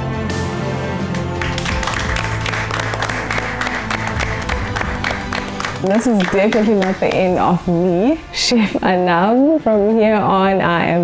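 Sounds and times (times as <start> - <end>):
background music with sustained tones: 0.0 - 11.0
people clapping: 1.3 - 7.6.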